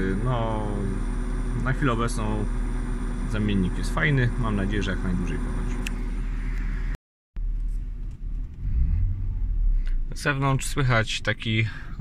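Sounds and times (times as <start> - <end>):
low vehicle rumble: 0.0 - 12.0.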